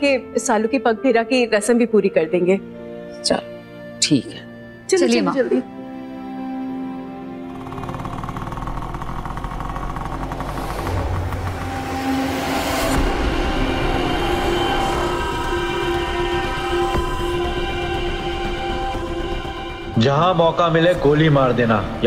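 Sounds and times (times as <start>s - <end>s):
sustained tones score: 6.7s - 22.0s
motorcycle engine running: 7.4s - 22.0s
rising whoosh: 10.0s - 16.9s.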